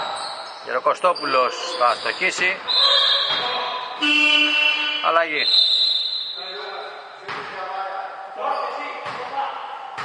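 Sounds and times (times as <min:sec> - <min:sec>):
high steady whistle: 0:02.1 - 0:06.7
electronic horn buzzing: 0:04.0 - 0:05.4.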